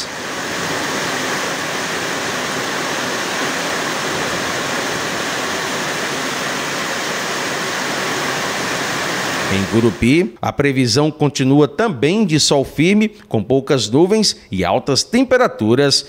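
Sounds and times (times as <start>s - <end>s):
heavy rain on pavement: 0.0s - 10.0s.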